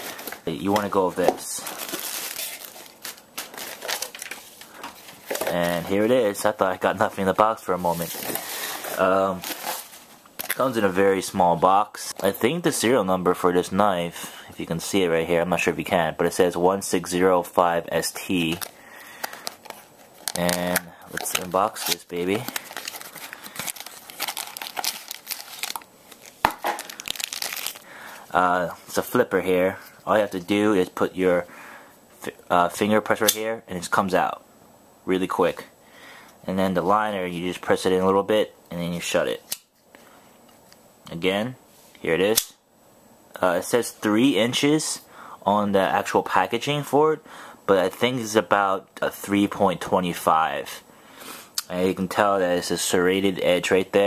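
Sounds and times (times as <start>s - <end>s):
plastic packing crinkling: 0.0s - 6.5s, 7.9s - 10.8s, 18.3s - 28.2s.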